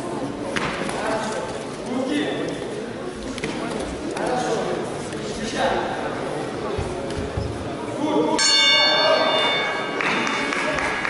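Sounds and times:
bell struck ringing: 0:08.4 - 0:10.8.

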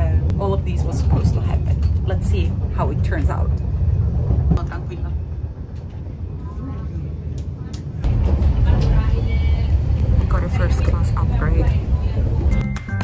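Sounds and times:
train rumble inside carriage: 0:00.0 - 0:13.0.

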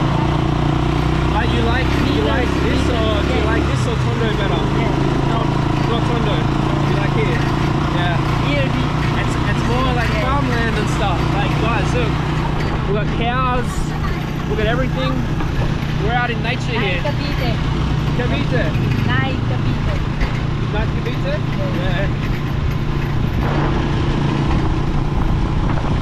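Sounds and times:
vehicle traffic drone: 0:00.0 - 0:26.0
indistinct voices: 0:01.3 - 0:22.3.

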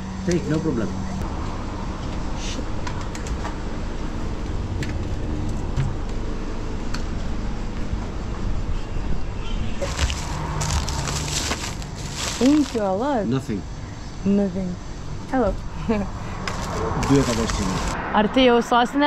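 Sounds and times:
plastic bag rustling: 0:09.8 - 0:13.0, 0:16.5 - 0:18.0.

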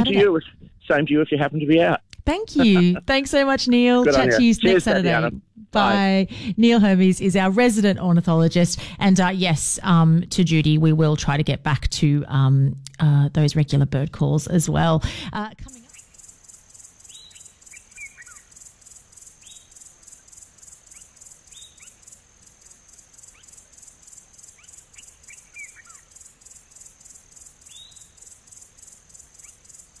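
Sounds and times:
insect chirring: 0:15.7 - 0:30.0.

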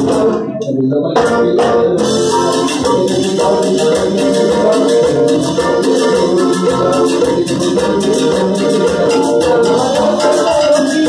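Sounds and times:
live band melody over bass: 0:00.0 - 0:11.0
rattling percussion beat: 0:00.0 - 0:11.0.

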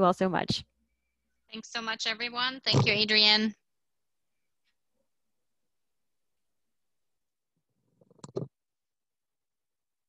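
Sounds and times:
rough microphone noise: 0:02.6 - 0:03.3.

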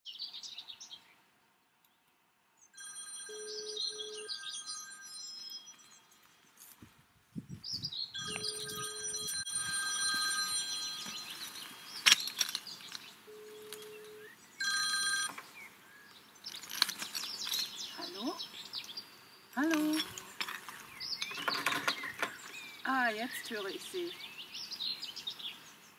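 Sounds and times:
birds chirping: 0:00.1 - 0:06.7, 0:07.4 - 0:25.9
rotary telephone ringing: 0:02.8 - 0:05.6, 0:08.2 - 0:12.6, 0:13.3 - 0:15.5, 0:19.6 - 0:22.4.

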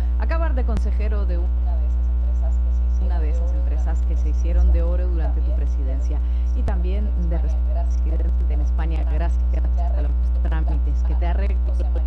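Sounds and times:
low electrical hum: 0:00.0 - 0:12.0
person speaking: 0:00.0 - 0:12.0.

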